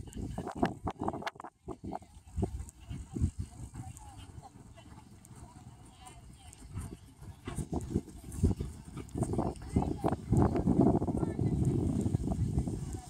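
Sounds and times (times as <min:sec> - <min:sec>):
horse hooves trotting on grass: 0:00.1 - 0:13.0.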